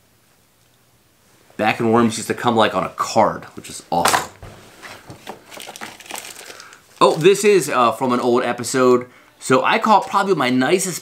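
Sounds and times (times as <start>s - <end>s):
hand rummaging in plastic box: 4.8s - 7.4s
plastic packaging crinkling: 4.8s - 8.6s, 9.7s - 10.6s.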